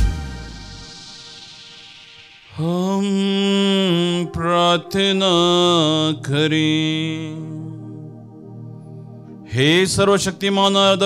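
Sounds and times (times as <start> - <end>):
low steady note: 0.0 - 11.0
man chanting: 2.6 - 8.2, 9.5 - 11.0.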